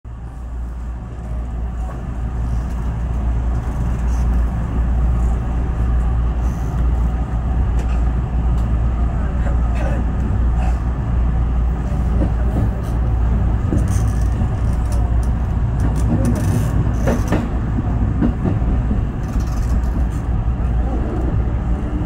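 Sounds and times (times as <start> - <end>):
electric train rumbling: 0.1 - 22.0.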